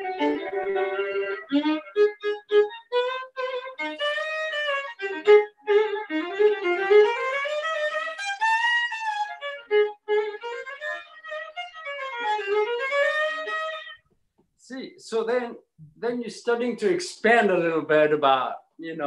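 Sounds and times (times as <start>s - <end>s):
solo violin playing lively tune: 0.0s - 14.0s.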